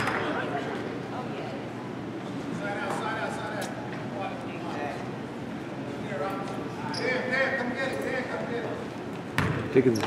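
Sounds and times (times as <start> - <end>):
murmur of distant voices echoing: 0.0 - 10.0.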